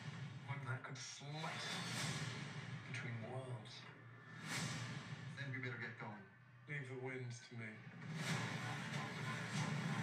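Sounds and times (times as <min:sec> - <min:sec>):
trailer music: 0:01.4 - 0:06.2, 0:07.8 - 0:10.0.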